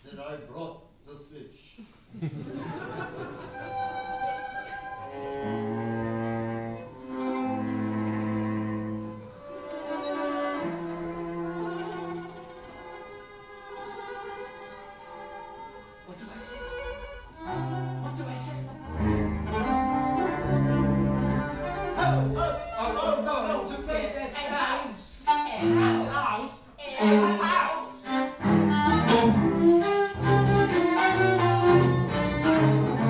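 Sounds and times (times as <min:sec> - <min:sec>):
viola cello and double bass bowing: 0:03.1 - 0:33.0.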